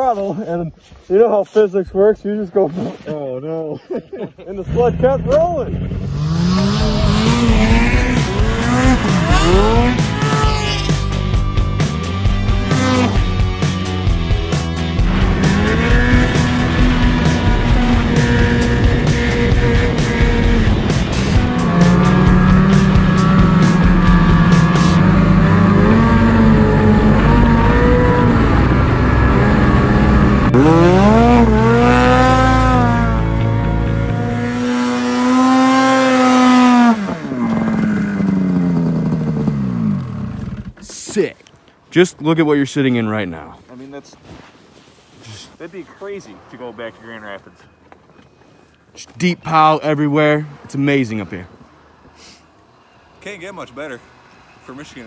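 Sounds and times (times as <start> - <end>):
snowmobile engine revving: 4.5 - 40.9.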